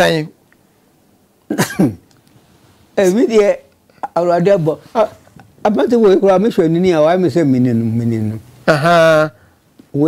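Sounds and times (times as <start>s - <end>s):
elderly man speaking: 3.0s - 10.0s.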